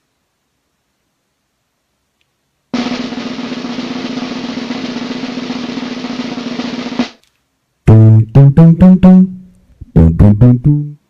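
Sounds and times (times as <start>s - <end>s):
drum roll: 2.8s - 7.2s.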